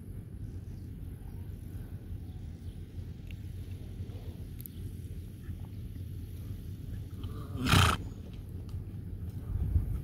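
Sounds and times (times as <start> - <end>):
steady low rumble: 0.0 - 10.0
horse snorting: 7.2 - 8.0.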